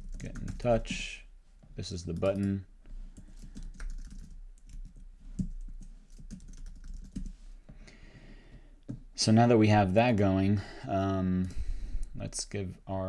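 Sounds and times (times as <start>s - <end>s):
computer keyboard typing: 0.0s - 0.9s, 3.2s - 7.3s.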